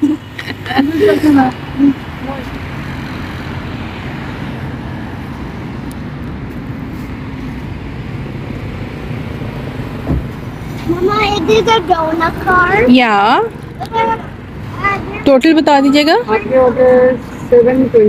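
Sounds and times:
traffic rumble: 0.0s - 18.0s
low thump: 10.0s - 10.4s.

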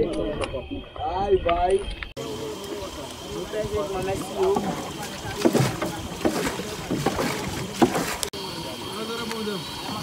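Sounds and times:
faint voices: 0.0s - 10.0s
knocks on wooden boat: 4.4s - 8.2s.

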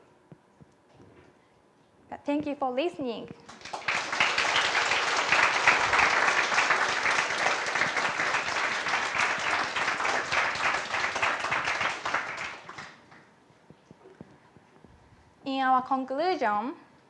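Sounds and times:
audience applauding: 3.5s - 13.3s.

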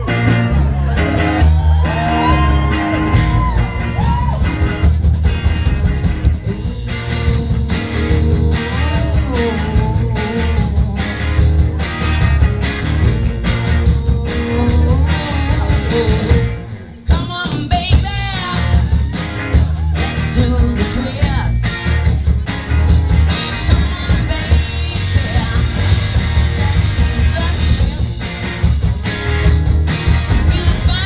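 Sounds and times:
drums and cymbals: 0.0s - 31.0s
rock band playing live: 0.0s - 31.0s
woman singing lead: 6.4s - 12.2s, 12.9s - 21.8s, 23.4s - 28.4s, 30.3s - 31.0s.

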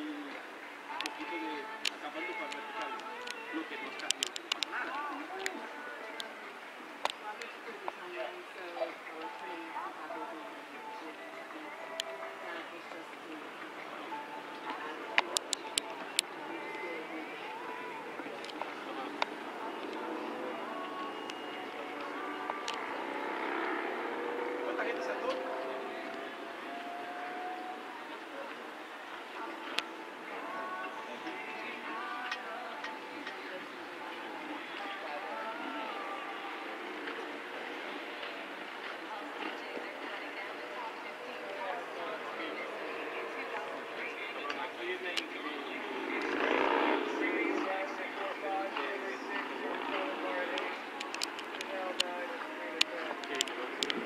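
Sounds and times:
crowd murmur and chatter: 0.0s - 54.0s.

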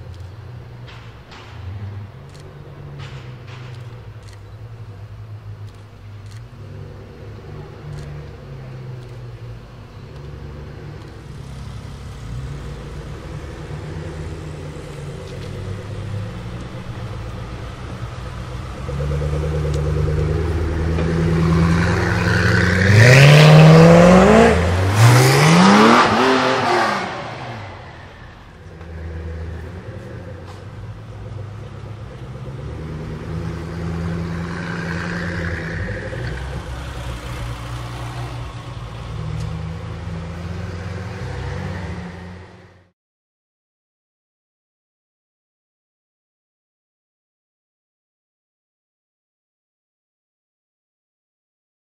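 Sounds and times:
car engine revving: 5.4s - 42.9s.

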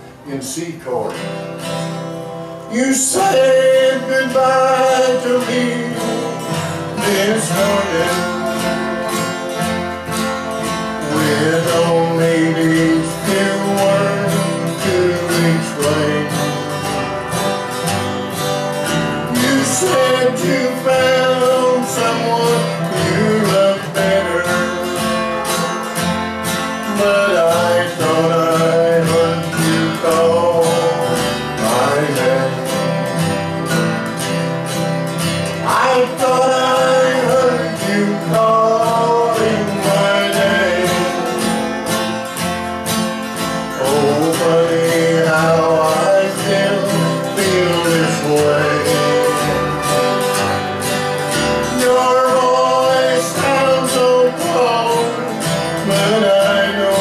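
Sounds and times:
strummed acoustic guitar: 0.0s - 57.0s
sliding melody line: 2.8s - 57.0s.

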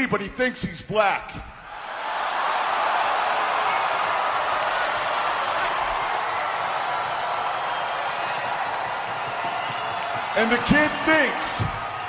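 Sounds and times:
arena crowd noise: 1.5s - 12.0s.

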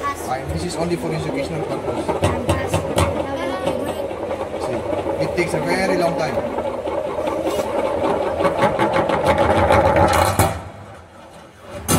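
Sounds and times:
object rattling round metal funnel: 0.6s - 11.9s.

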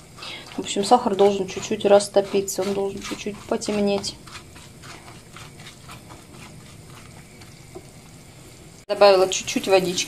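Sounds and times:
spatula stirring: 0.0s - 8.3s
butter and sugar sizzling in skillet: 0.0s - 10.0s.

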